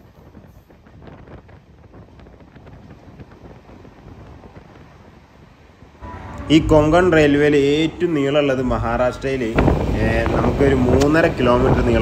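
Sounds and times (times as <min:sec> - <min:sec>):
air against microphone: 0:00.0 - 0:12.0
train rushing through tunnel: 0:00.0 - 0:12.0.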